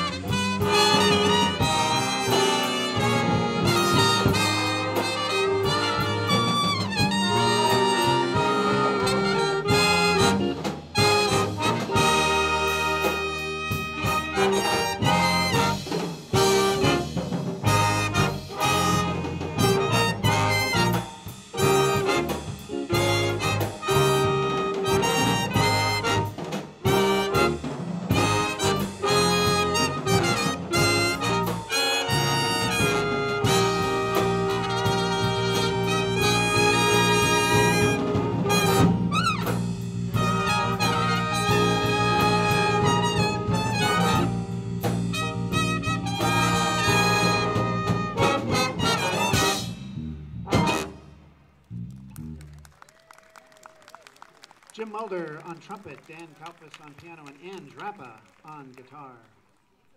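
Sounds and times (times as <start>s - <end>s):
big band playing jazz: 0.0s - 59.1s.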